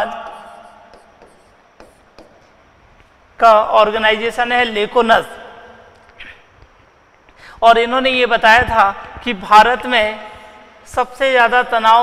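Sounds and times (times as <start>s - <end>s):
pen scratching on screen: 0.2s - 2.5s.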